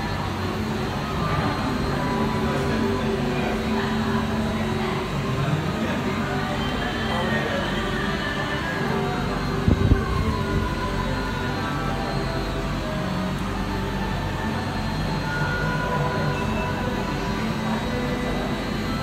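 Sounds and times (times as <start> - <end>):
machinery rumble: 0.0 - 19.0.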